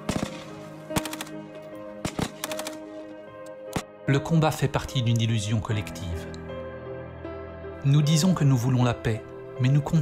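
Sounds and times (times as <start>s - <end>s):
rifle fire: 0.0s - 1.3s, 2.0s - 2.8s
ambient music chord: 2.8s - 10.0s.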